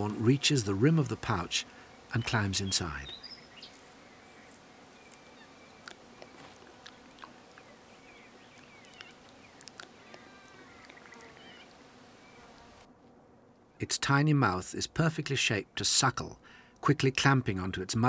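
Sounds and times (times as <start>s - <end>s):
insects buzzing: 0.0s - 18.0s.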